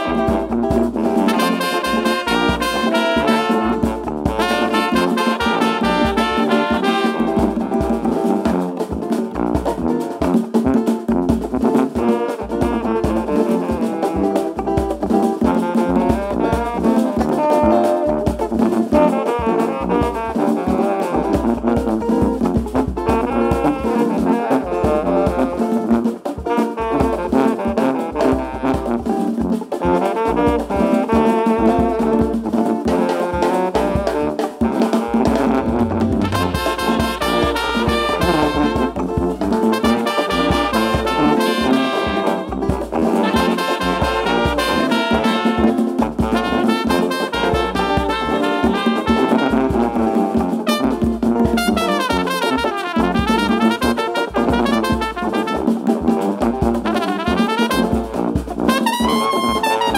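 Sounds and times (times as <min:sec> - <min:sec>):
brass band playing: 0:00.0 - 0:59.9
congas: 0:00.0 - 0:59.9
drum kit: 0:00.0 - 0:59.9
sousaphone bass line: 0:35.0 - 0:43.3.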